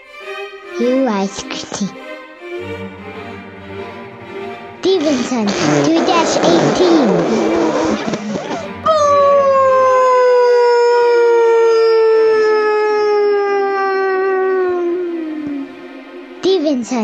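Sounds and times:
wail sliding down in pitch: 6.6s - 16.2s.

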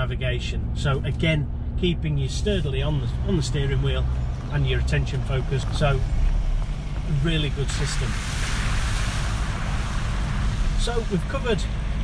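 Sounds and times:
truck engine rumble: 0.0s - 12.0s
water spray hissing: 7.4s - 11.9s.

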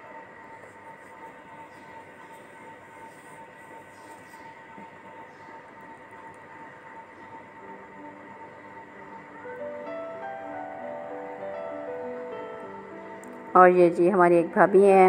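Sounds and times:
thin steady hum: 0.0s - 15.0s.

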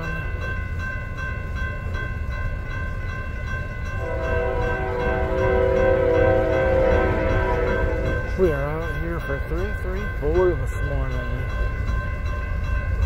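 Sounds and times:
crossing bell ringing: 0.0s - 13.0s
locomotive air horn: 4.0s - 8.5s.

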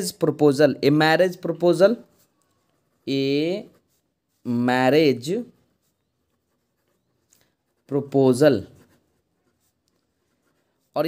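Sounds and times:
pen scratching on paper: 1.1s - 11.0s.

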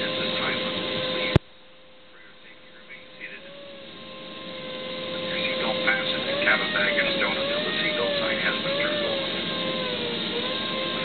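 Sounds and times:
steady wavering whine: 0.0s - 11.0s.

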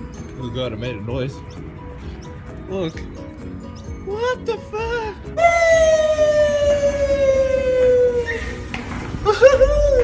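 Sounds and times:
squeal falling in pitch: 8.2s - 8.6s.

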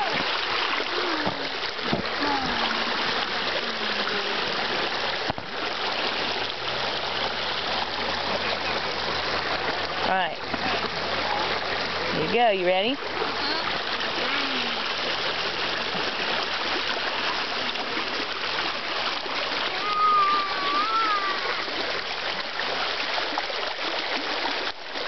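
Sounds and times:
water rushing over small waterfall: 0.0s - 25.0s.

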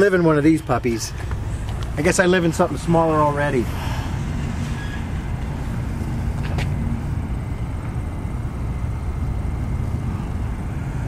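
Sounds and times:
faint hum: 0.0s - 11.0s
low outdoor rumble: 0.0s - 11.0s.

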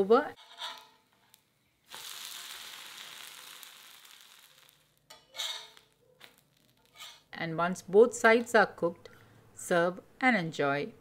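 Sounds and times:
pancake sizzling on griddle: 1.8s - 7.3s.

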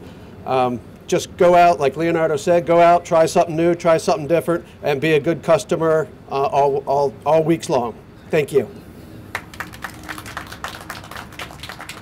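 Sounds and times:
light applause: 9.3s - 12.0s.

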